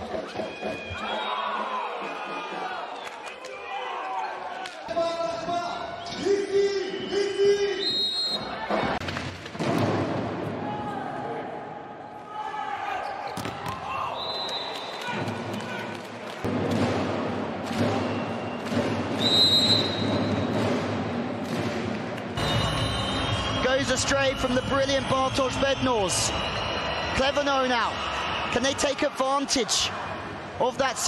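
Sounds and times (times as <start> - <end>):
crowd noise: 0.0 - 31.0
short high whistle tones: 22.4 - 27.2.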